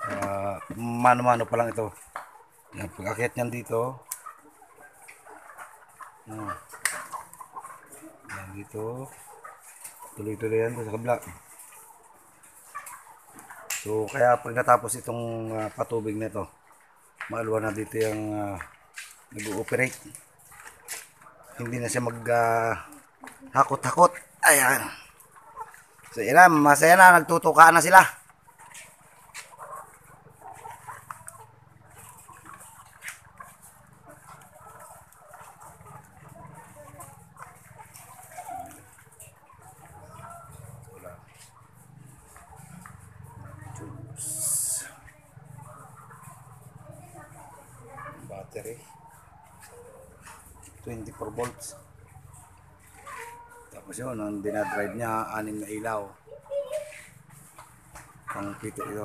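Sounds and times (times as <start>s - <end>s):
hens pecking on metal troughs: 0.0s - 59.0s.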